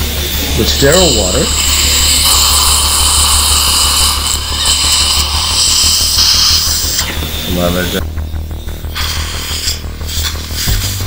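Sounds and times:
dental suction hissing: 0:00.0 - 0:08.0, 0:08.8 - 0:11.0.

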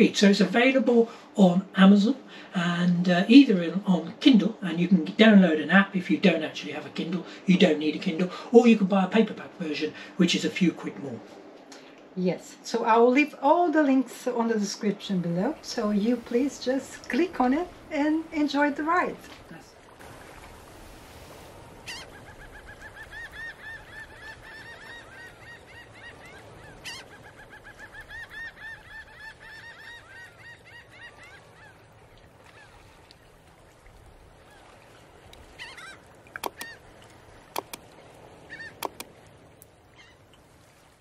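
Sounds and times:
flock of birds calling: 0:21.9 - 0:32.8
sharp clicks or knocks: 0:36.4 - 0:36.7, 0:37.6 - 0:37.8, 0:38.8 - 0:39.1.

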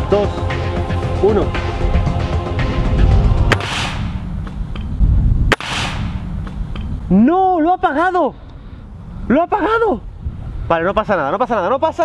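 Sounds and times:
background music: 0:00.0 - 0:04.8
rifle shots: 0:03.5 - 0:04.3, 0:05.5 - 0:06.6.

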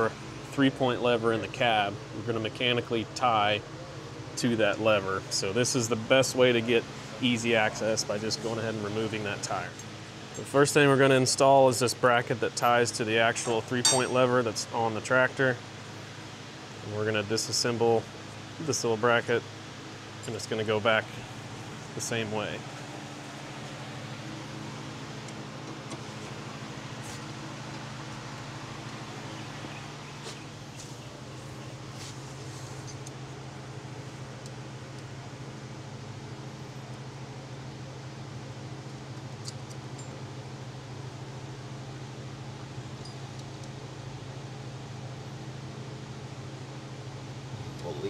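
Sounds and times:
steady machine hum: 0:00.0 - 0:48.0.

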